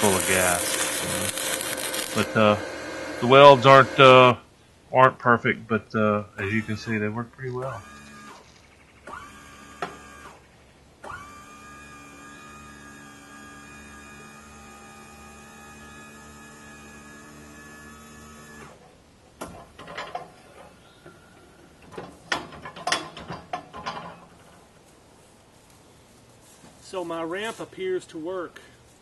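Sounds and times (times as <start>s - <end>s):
small electric motor whining: 0.0s - 4.3s, 6.4s - 18.8s
metal clanks and rattles: 19.4s - 20.8s, 21.8s - 24.8s.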